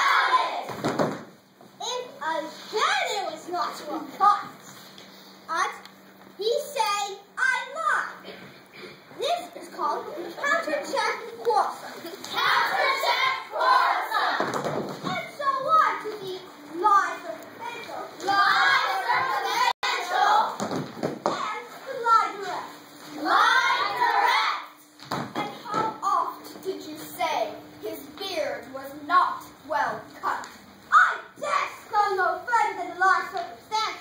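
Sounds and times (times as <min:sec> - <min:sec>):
children speaking: 0:00.0 - 0:00.8, 0:01.8 - 0:04.8, 0:05.5 - 0:34.0.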